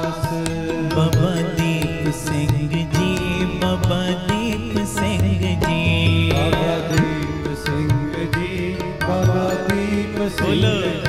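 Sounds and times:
harmonium: 0.0 - 11.0
person singing a hymn: 5.9 - 11.0.

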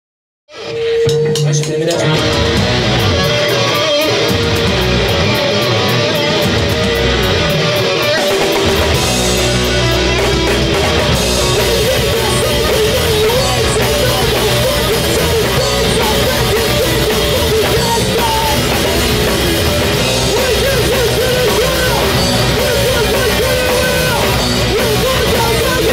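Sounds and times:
electric guitar strummed fast: 0.5 - 25.9
bass and drums: 0.6 - 25.9.

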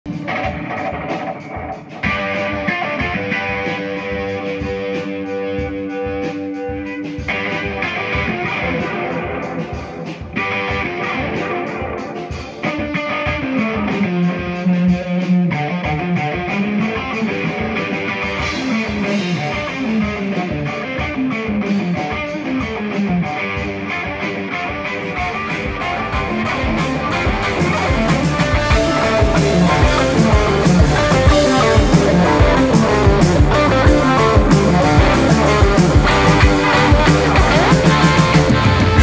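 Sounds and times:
electric guitar rock riff: 0.0 - 39.0
steady drum beat: 0.1 - 39.0.

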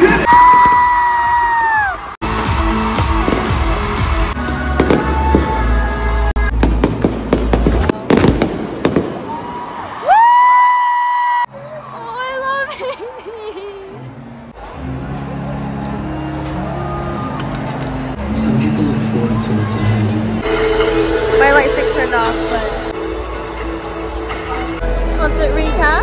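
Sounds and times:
music with steady bass: 2.2 - 6.6, 14.7 - 26.0
fireworks bangs and crackles: 2.9 - 5.7, 6.4 - 9.8.

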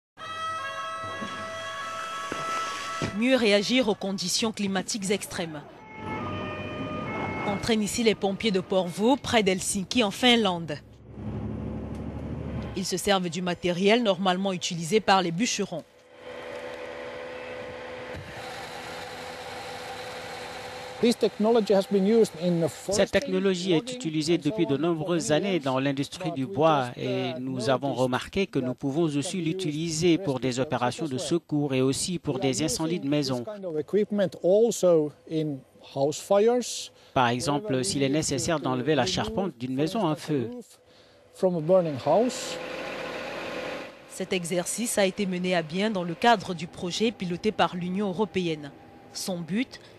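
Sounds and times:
truck engine running: 15.9 - 22.6
crane engine and hydraulics humming: 15.9 - 22.9, 40.8 - 49.9
man's voice: 21.0 - 36.6, 37.2 - 40.7.

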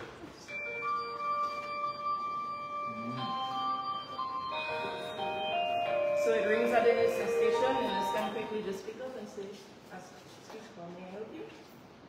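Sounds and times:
electronic chime tune: 0.5 - 8.7.

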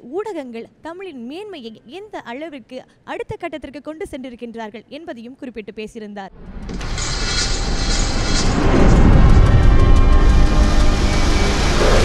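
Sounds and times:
whoosh building into deep rumble: 6.4 - 12.0.

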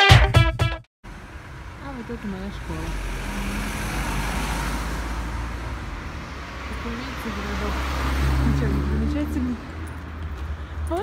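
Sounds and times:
car engine rumble: 1.0 - 11.0
road traffic noise: 1.0 - 11.0.

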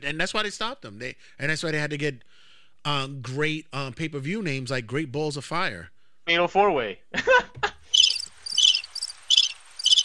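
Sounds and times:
cricket chirps: 7.9 - 10.0.

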